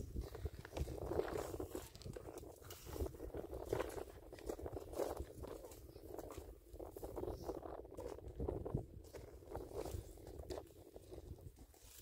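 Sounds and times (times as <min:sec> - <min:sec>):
footsteps on stony ground: 0:00.0 - 0:12.0.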